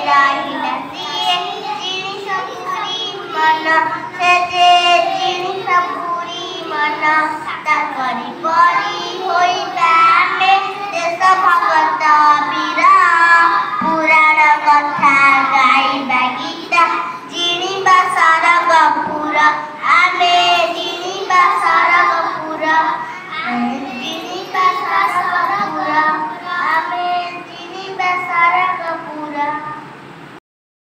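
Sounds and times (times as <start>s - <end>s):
girls singing together: 0.0s - 30.1s.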